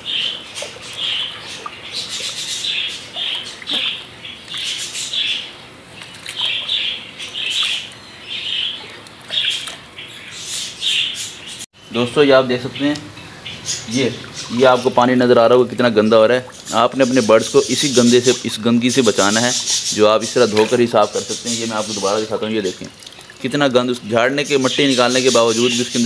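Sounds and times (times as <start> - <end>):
small birds chirping: 0.0 - 26.0
hands swishing seed in water: 5.9 - 8.0.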